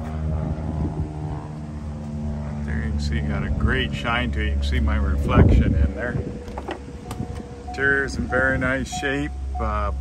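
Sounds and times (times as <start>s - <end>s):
motor droning: 0.0s - 10.0s.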